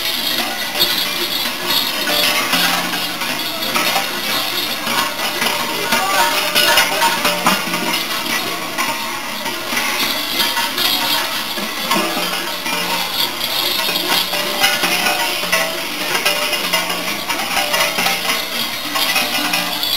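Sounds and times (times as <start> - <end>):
bells jangling and clanging: 0.0 - 19.9.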